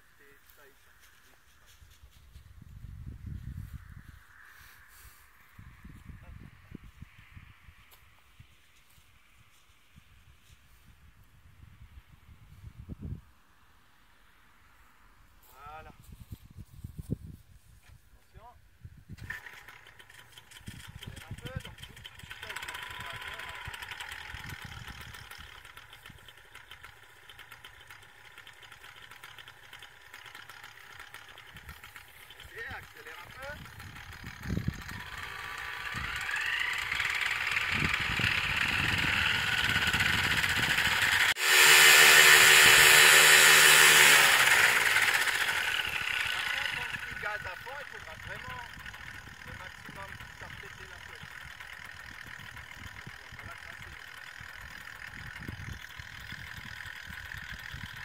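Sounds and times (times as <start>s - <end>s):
paramotor engine and propeller: 0.0s - 10.9s, 19.1s - 58.0s.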